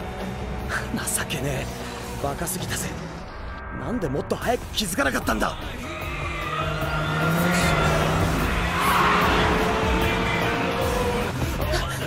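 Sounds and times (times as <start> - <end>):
racing car engines revving: 5.8 - 11.7.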